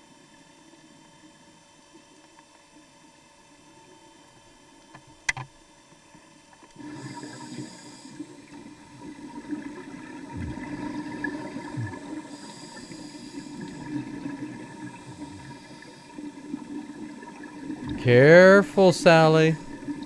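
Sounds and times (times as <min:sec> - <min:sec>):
faint steady hum: 0:00.0 - 0:20.0
underwater exhaust bubbles gurgling: 0:06.8 - 0:18.5, 0:19.1 - 0:20.0.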